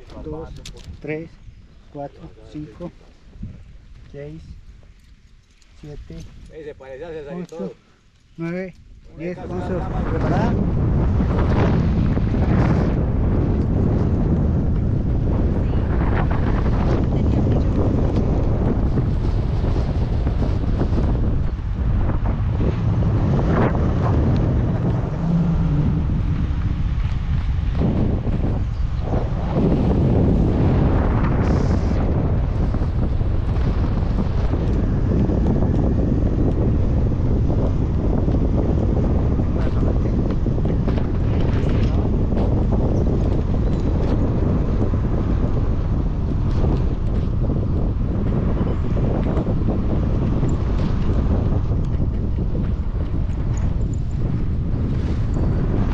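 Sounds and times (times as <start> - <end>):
wind rumble on microphone: 0.0 - 55.9.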